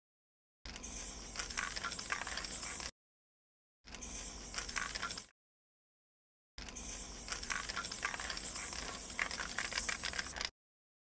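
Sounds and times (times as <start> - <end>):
spray can rattling when shaken: 7.2 - 10.5.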